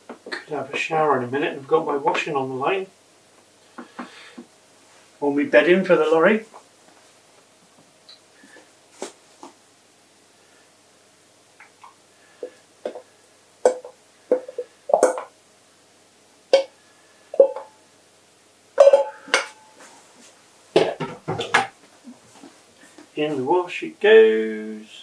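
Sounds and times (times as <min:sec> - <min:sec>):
utensil clinking on metal pan: 0:18.8 - 0:19.6.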